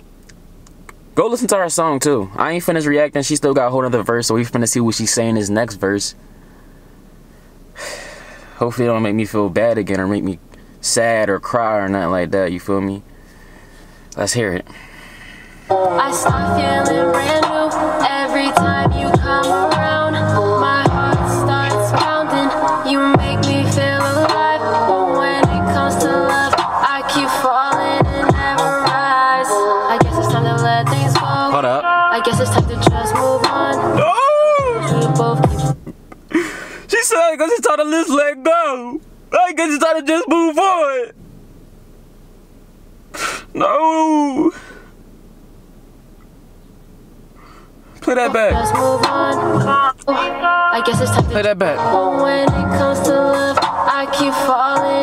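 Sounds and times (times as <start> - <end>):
man breathing in: 6.2 - 8.6, 13.1 - 15.7, 36.3 - 36.9, 43.2 - 43.5, 44.5 - 45.0, 47.4 - 47.8
woman singing: 15.7 - 35.8, 48.2 - 55.0
hip-hop beat with bass: 15.7 - 35.9, 48.3 - 55.0.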